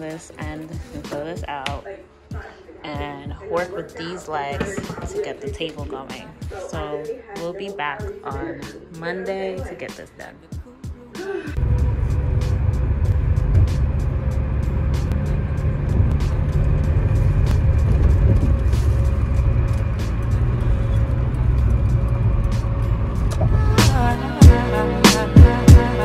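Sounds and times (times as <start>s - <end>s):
music playing: 0.0s - 26.0s
road and engine rumble: 11.6s - 26.0s.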